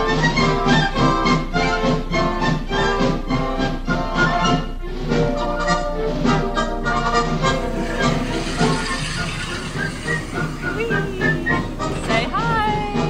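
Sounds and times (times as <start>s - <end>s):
high voices swooping: 7.6s - 13.0s
upbeat music with singing: 7.6s - 13.0s.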